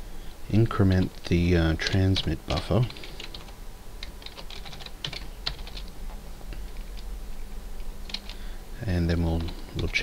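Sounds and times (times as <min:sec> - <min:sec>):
keyboard typing: 0:01.8 - 0:05.9, 0:08.0 - 0:08.4.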